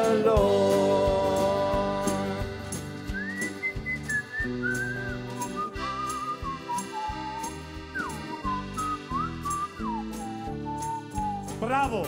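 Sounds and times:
live band with steady drum beat: 0:00.0 - 0:09.1
whistled tune: 0:02.7 - 0:12.0.

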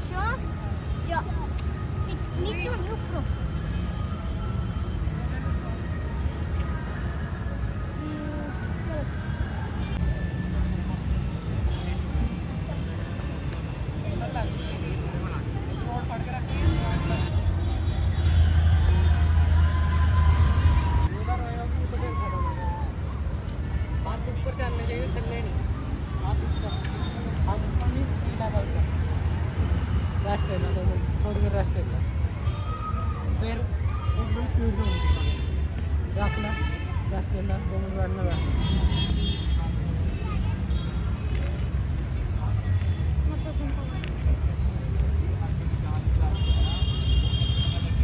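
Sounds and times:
traffic rumble: 0:00.0 - 0:36.2
loud rushing noise: 0:16.5 - 0:21.1.

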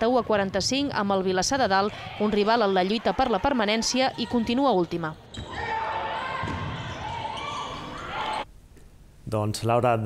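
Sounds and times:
echoing voices: 0:00.0 - 0:08.2.

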